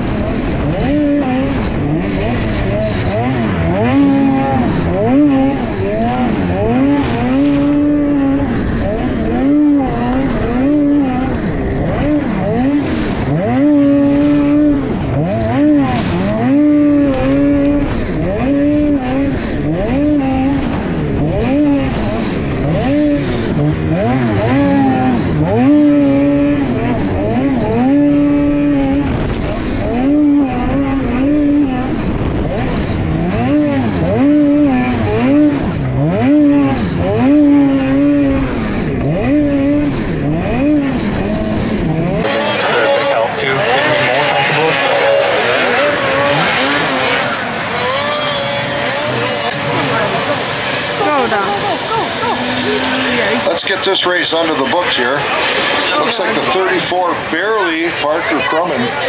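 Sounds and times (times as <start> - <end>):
distant snowmobiles racing: 0.0 - 59.0
snowmobile engine revving: 0.0 - 59.0.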